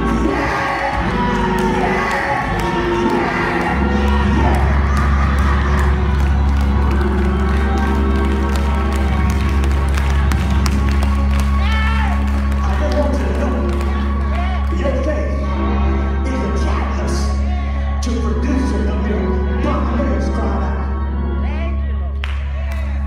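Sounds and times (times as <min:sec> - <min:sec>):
church music with held chords: 0:00.0 - 0:23.0
voices shouting and cheering: 0:00.0 - 0:23.0.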